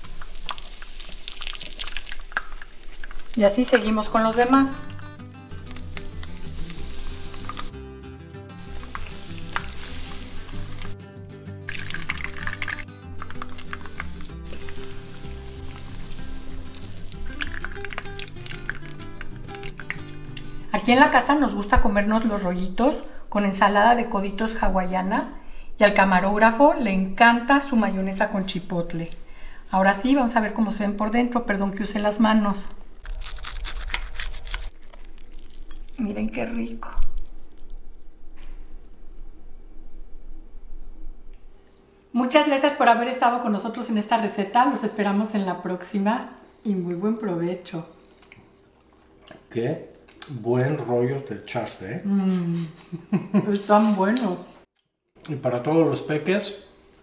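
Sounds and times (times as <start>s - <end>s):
rolls sizzling in hot oil: 0.0s - 11.0s, 11.6s - 21.4s
background music: 3.6s - 21.9s
crispy crust crackling when cut: 33.0s - 36.0s.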